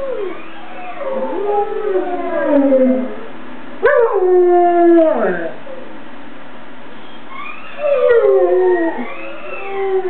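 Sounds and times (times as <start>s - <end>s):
dogs howling: 0.0s - 5.9s, 7.4s - 10.0s.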